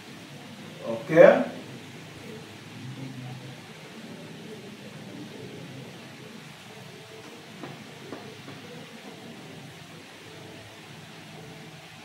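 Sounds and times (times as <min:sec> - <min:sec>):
room noise hiss: 0:00.0 - 0:12.0.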